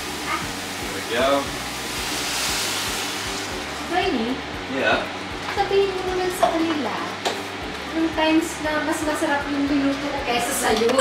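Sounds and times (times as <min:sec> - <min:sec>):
water pouring into pot: 0:00.0 - 0:03.8.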